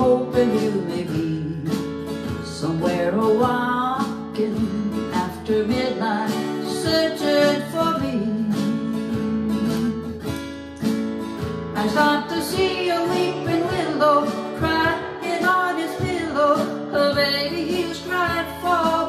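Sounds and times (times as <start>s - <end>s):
woman singing: 0.0s - 10.2s, 11.7s - 19.0s
acoustic guitar strumming: 0.0s - 19.0s.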